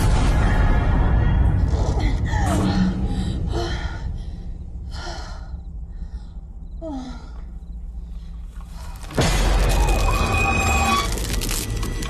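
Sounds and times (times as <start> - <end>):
woman breathing heavily: 2.8 - 9.1.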